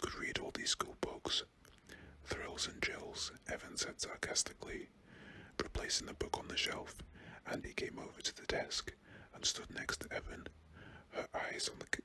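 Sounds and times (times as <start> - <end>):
man whispering: 0.0 - 12.0.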